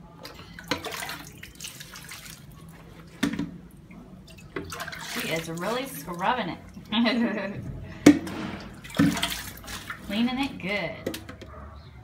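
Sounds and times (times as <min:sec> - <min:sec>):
water splashing and pouring: 0:00.3 - 0:02.7, 0:04.3 - 0:06.3, 0:08.2 - 0:10.3.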